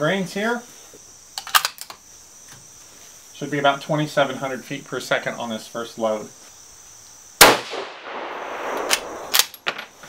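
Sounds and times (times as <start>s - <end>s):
rifle handling rustle: 1.4s - 2.0s, 8.7s - 10.0s
rifle bolt clicks: 8.7s - 9.8s.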